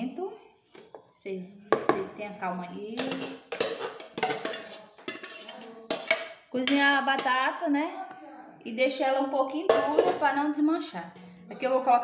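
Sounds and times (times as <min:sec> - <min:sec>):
metal spoon scraping a pot: 0:03.0 - 0:07.6, 0:09.7 - 0:10.2.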